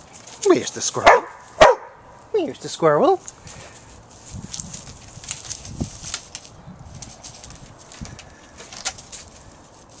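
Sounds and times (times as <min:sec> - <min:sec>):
dog paws scuffing on wood: 0:00.0 - 0:01.8
dry leaves rustling: 0:00.0 - 0:10.0.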